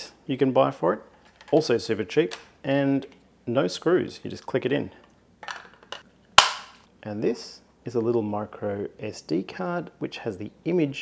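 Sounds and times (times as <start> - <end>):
plastic case handling: 1.1 - 1.7, 5.4 - 6.0.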